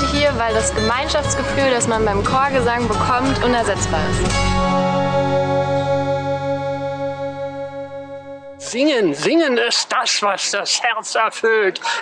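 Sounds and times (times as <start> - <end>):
long held pulsing chord: 3.1 - 8.9.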